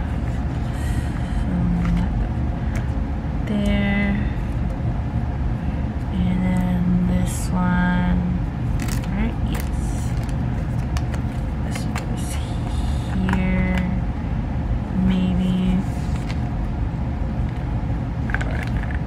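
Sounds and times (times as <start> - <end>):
steady low rumble: 0.0 - 19.0
person humming: 0.8 - 2.1
plastic rustles and clicks: 8.8 - 12.1, 18.3 - 19.0
cards sliding in plastic sleeves: 15.8 - 16.5.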